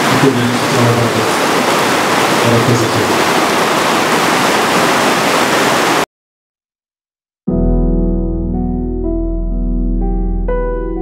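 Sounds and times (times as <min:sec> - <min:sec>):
loud rushing static noise: 0:00.0 - 0:06.0.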